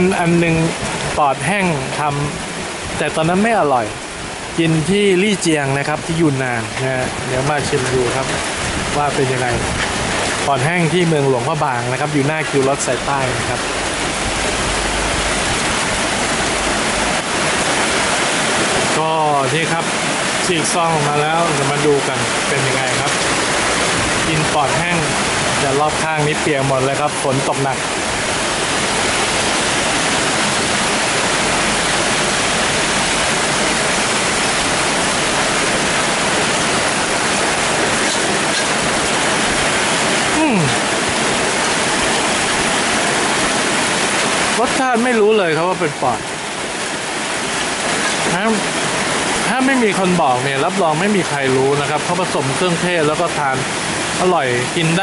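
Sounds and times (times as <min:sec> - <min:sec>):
heavy rain pouring: 0:00.0 - 0:55.0.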